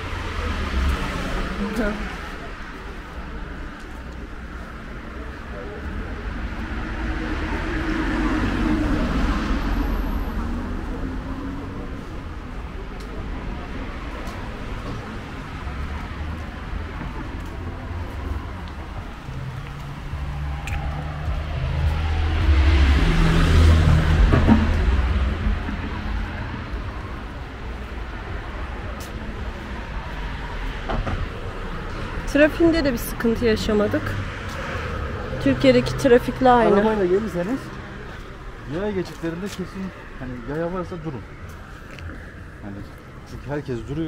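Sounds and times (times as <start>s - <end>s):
cars driving past: 0.0s - 44.0s
low steady traffic rumble: 0.0s - 44.0s.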